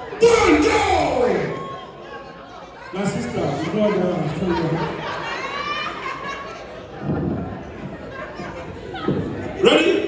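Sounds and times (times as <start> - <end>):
voices chattering and calling out: 0.0 - 10.0
loud voice talking: 0.2 - 1.6.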